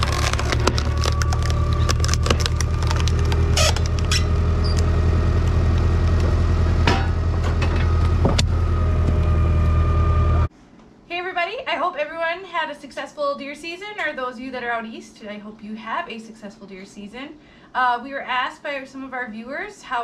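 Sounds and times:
wood cracking and splintering: 0:00.0 - 0:06.4
log splitter engine running: 0:00.0 - 0:10.5.

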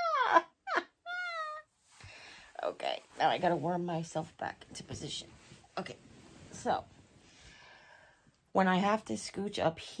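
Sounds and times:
woman laughing: 0:00.0 - 0:01.6
woman crying and whimpering: 0:00.0 - 0:01.7.

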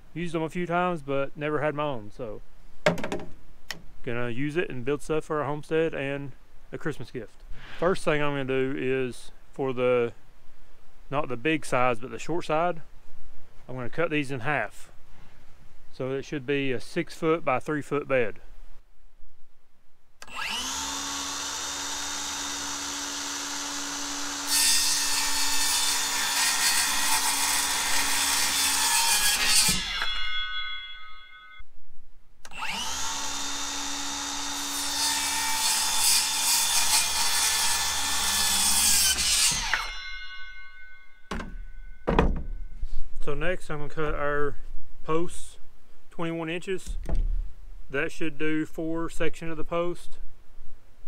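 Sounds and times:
short knocks: 0:02.8 - 0:03.8, 0:41.3 - 0:42.7, 0:46.8 - 0:47.5
circular saw cutting wood: 0:20.2 - 0:31.3, 0:32.5 - 0:41.6.

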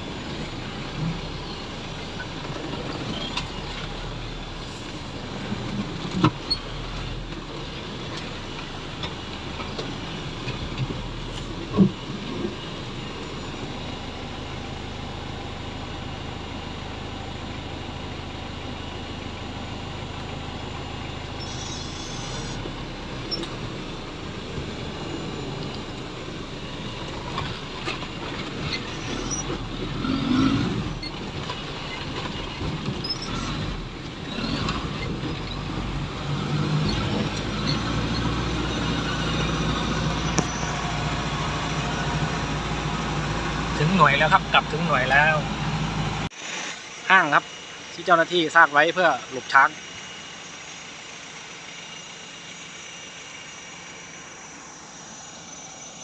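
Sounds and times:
branches brushing vehicle: 0:00.0 - 0:56.0
off-road vehicle engine at low speed: 0:00.0 - 0:56.0.

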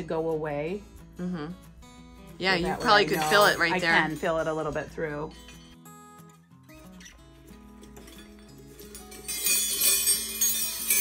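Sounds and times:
background music low notes: 0:00.0 - 0:11.0
silverware wind chime clinking: 0:02.7 - 0:04.9, 0:07.7 - 0:11.0.

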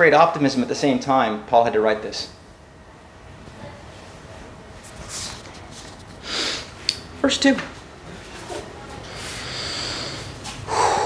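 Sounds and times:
man breathing in: 0:09.0 - 0:11.0.

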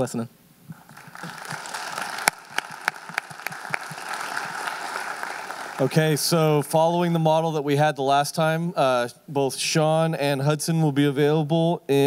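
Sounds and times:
sharp nearby claps: 0:00.7 - 0:06.0
audience applauding: 0:00.7 - 0:06.6.

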